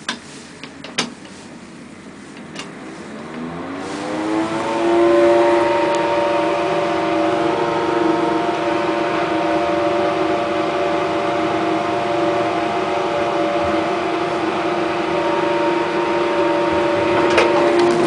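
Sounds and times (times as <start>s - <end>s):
lift motor whining: 1.9s - 18.0s.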